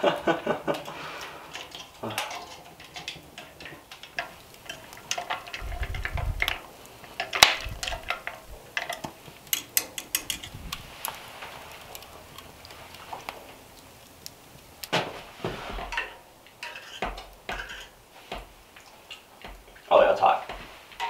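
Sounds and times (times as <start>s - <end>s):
spoon stirring in earthenware pot: 0.8s - 13.6s, 15.7s - 21.0s.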